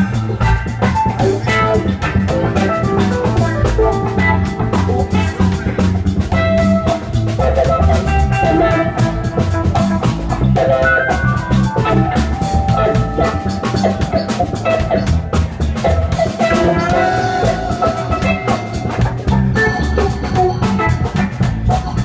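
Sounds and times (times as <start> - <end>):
bass line: 0.0 - 22.0
drum kit beat: 0.0 - 22.0
clean electric guitar melody: 0.8 - 22.0.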